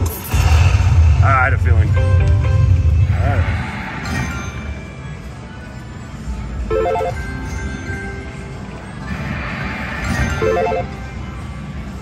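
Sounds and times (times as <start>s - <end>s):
slot machine electronic music: 1.8s - 12.0s.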